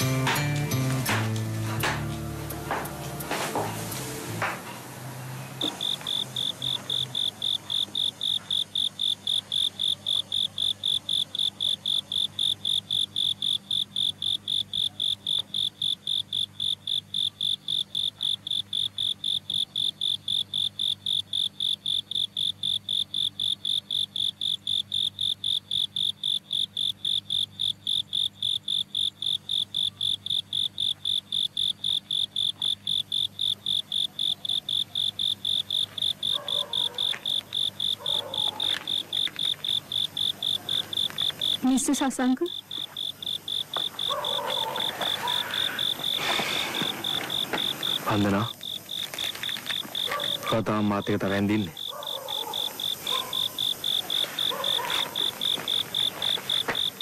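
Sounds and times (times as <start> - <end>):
cricket chirping: 5.4 - 57.0.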